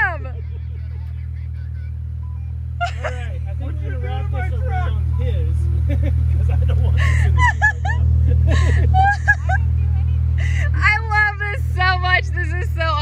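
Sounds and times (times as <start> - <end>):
car engine idling: 0.0 - 13.0
people talking: 0.0 - 13.0.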